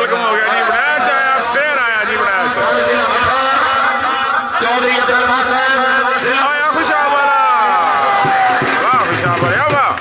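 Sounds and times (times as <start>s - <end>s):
man commentating: 0.0s - 10.0s.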